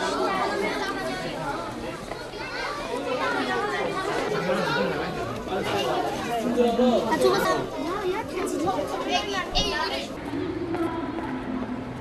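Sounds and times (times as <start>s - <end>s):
overlapping voices chatter: 0.0s - 12.0s.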